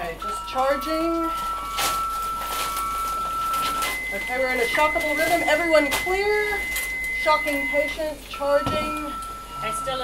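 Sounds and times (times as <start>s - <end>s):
defibrillator charging tone: 0.0s - 10.0s
higher steady ready tone: 0.0s - 10.0s.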